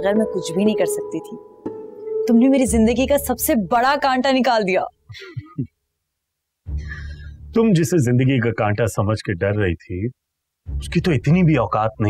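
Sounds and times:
woman's voice: 0:00.0 - 0:01.4, 0:02.3 - 0:05.0.

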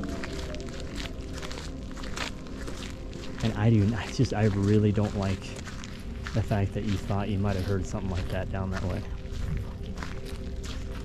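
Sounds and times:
footsteps crunching on gravel: 0:00.0 - 0:11.0
steady low hum: 0:00.0 - 0:11.0.

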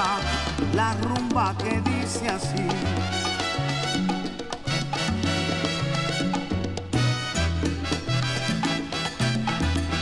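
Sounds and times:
salsa dance music from vinyl: 0:00.0 - 0:10.0.

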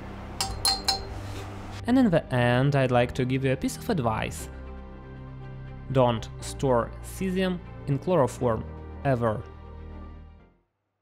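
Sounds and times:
tweezers tapping glass beaker: 0:00.4 - 0:01.2.

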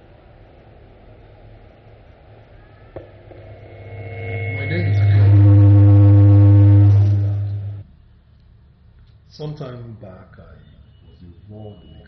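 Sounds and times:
loud electrical mains hum: 0:00.0 - 0:07.9.

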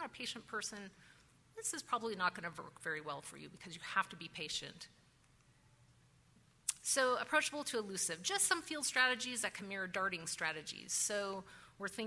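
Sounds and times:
woman speaking: 0:00.0 - 0:01.0, 0:01.6 - 0:05.0, 0:06.7 - 0:12.0.

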